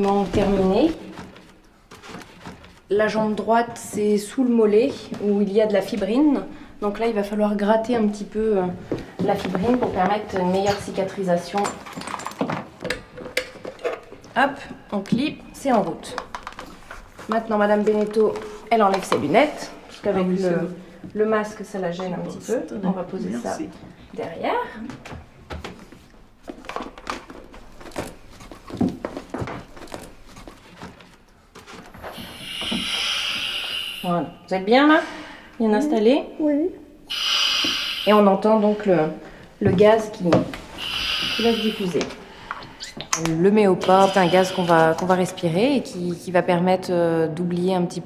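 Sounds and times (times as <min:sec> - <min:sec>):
gas hissing through mask: 0:32.1 - 0:34.5, 0:37.1 - 0:38.5, 0:40.7 - 0:42.2, 0:43.8 - 0:45.1.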